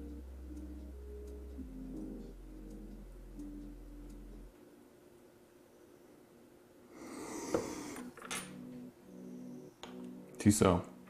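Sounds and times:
small steel tools set down: 8.2s - 8.6s.

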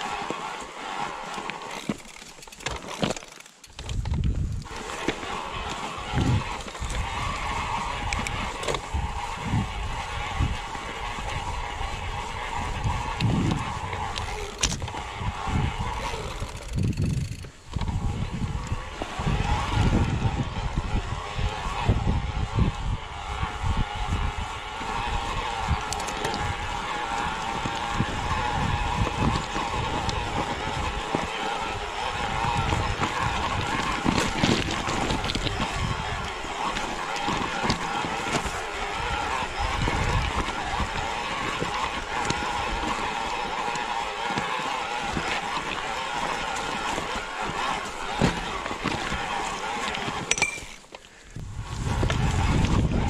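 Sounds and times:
tyres crunching over rocks: 0.0s - 9.3s, 24.8s - 51.2s.

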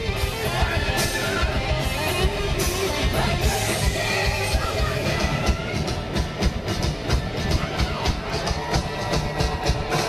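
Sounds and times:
drums hitting steadily: 0.0s - 10.0s
sustained electric guitar: 0.0s - 10.0s.

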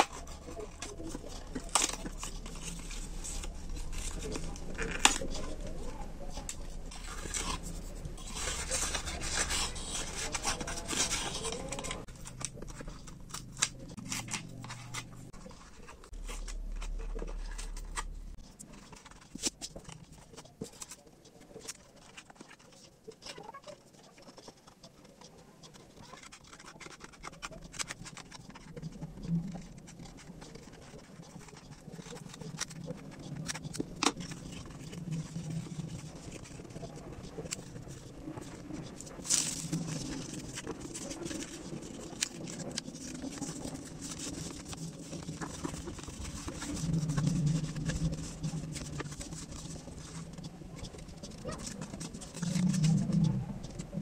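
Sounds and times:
cardboard and foil crinkling: 0.0s - 54.0s.

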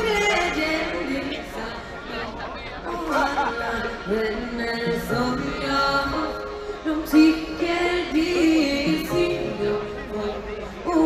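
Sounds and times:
people talking: 0.0s - 11.0s
person singing: 2.9s - 11.0s.

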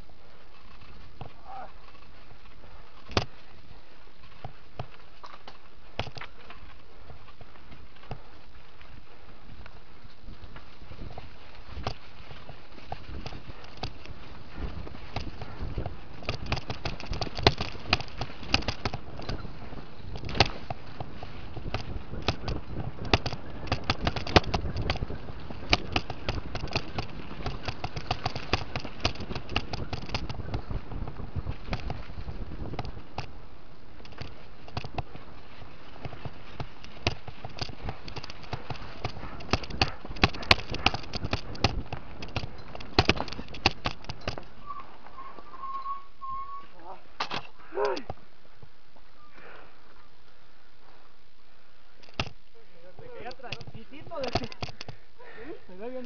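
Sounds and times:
mountain bike rattling on dirt trail: 0.0s - 56.0s
wind rush: 12.9s - 33.3s
wavering high tone: 44.6s - 46.8s.

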